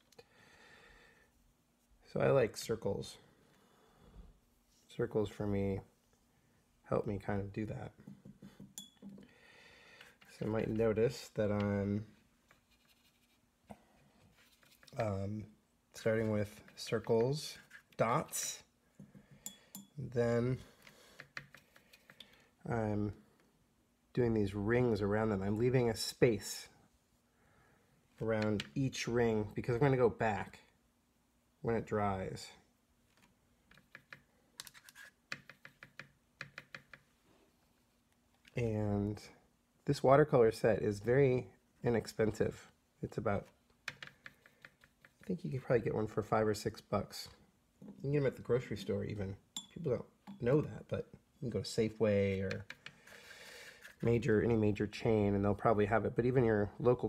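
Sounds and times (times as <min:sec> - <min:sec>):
faint light clink: 0:08.8 - 0:09.1, 0:19.4 - 0:20.0.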